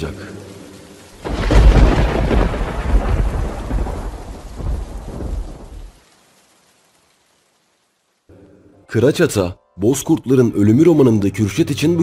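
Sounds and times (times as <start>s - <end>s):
thunder rumbling: 0.0s - 6.1s
rain hissing: 0.0s - 12.0s.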